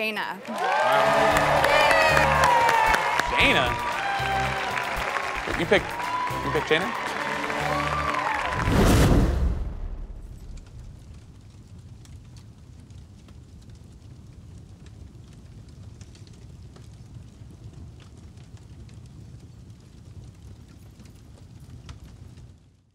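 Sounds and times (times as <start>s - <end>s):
fire crackling and rumbling: 0.6s - 22.9s.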